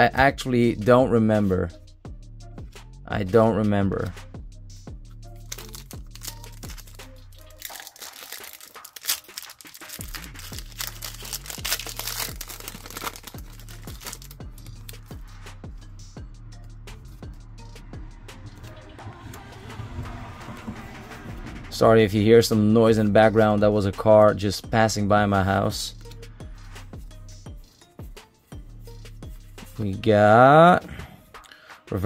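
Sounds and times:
background music with low beat: 0:00.0 - 0:32.0
foil pack crinkling and tearing: 0:05.5 - 0:15.1.

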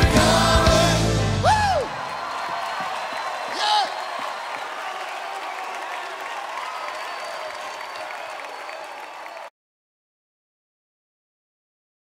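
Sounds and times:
audience applauding: 0:00.2 - 0:09.5.

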